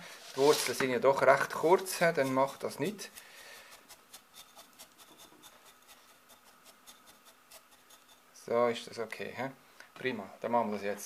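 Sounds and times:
clay granules scratching and clicking: 0:00.4 - 0:08.2.

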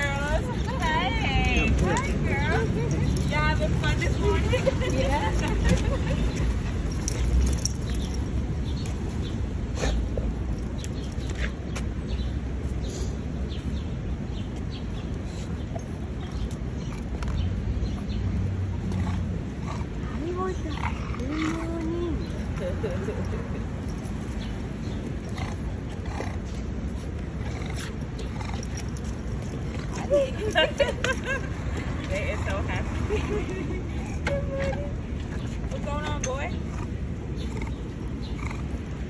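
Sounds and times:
city street noise: 0:00.0 - 0:39.0.

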